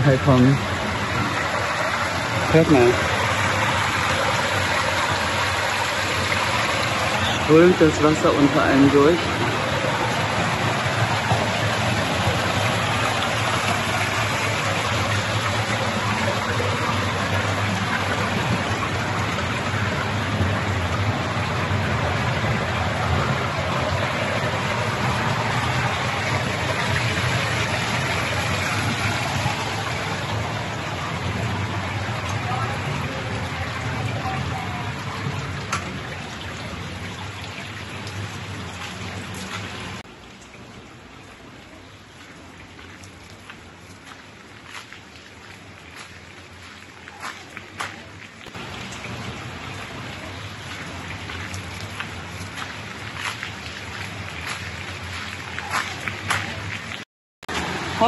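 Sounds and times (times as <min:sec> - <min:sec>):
stream rushing under walkway: 0:00.0 - 0:58.0.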